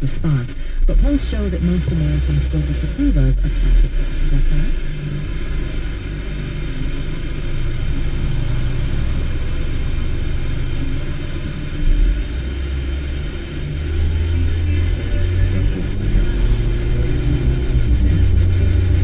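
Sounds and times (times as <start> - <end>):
low rumble: 0.0 - 19.0.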